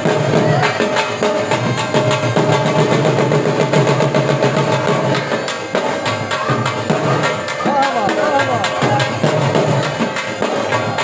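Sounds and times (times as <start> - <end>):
fast dhol drumming: 0.0 - 11.0.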